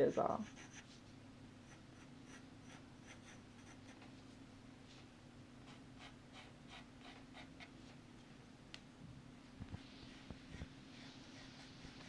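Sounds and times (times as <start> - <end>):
faint steady hum: 0.0 - 12.0
pencil scratching on paper: 0.1 - 1.0, 1.6 - 4.0, 10.1 - 12.0.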